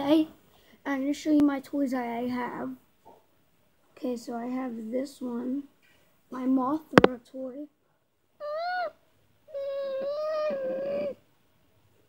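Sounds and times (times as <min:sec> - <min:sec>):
child imitating a monster's cry: 0:08.4 - 0:11.2.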